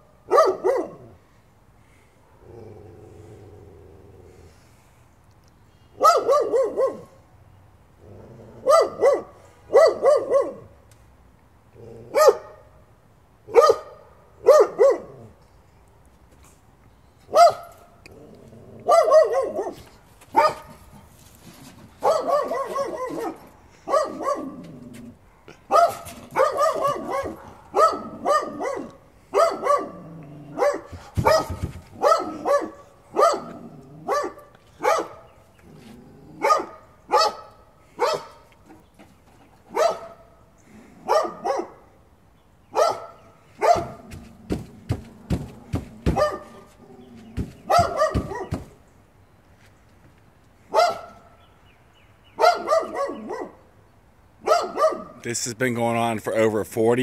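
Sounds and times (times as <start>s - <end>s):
dog barking: 0.3s - 1.1s, 6.0s - 7.2s, 8.6s - 10.7s, 12.1s - 12.6s, 13.5s - 15.2s, 17.3s - 17.7s, 18.8s - 20.9s, 22.0s - 24.6s, 25.7s - 35.3s, 36.4s - 38.4s, 39.7s - 40.3s, 41.0s - 41.9s, 42.7s - 44.2s, 46.0s - 46.7s, 47.6s - 48.7s, 50.7s - 51.3s, 52.4s - 53.6s, 54.4s - 55.2s.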